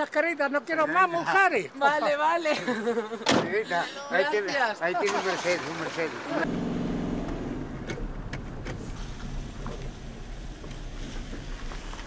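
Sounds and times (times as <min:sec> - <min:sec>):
car engine hum: 0:05.1 - 0:12.0.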